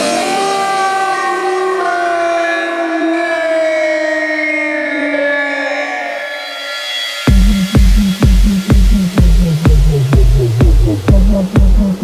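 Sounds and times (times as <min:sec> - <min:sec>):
siren-like synth: 0:00.0 - 0:12.0.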